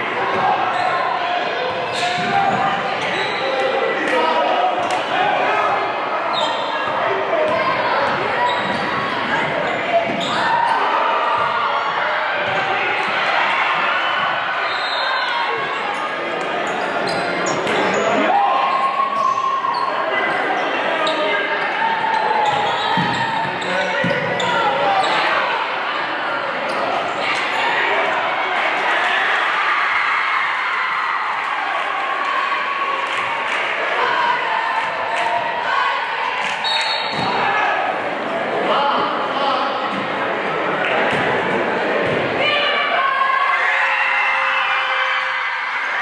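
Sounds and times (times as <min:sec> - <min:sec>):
echoing voices: 0:00.0 - 0:46.0.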